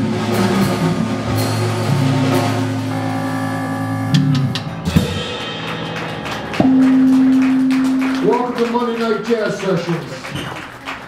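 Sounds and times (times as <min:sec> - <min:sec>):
sharp drum hits: 0:00.0 - 0:08.8
electric guitar: 0:00.0 - 0:10.8
jazz band playing: 0:00.0 - 0:11.0.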